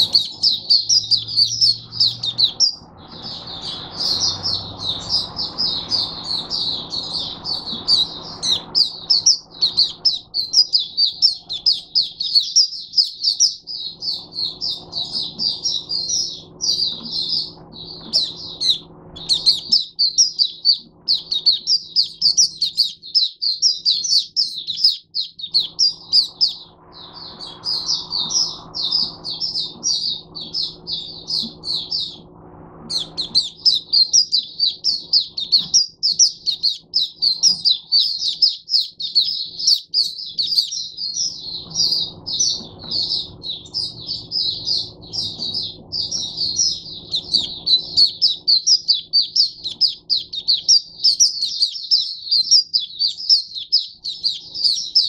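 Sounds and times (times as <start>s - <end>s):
bird twittering song: 0.0s - 55.0s
faint low hum: 0.0s - 55.0s.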